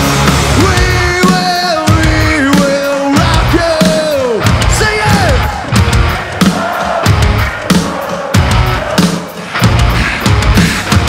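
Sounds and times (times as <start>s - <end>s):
distorted guitars: 0.0s - 11.0s
heavy drum beat: 0.0s - 11.0s.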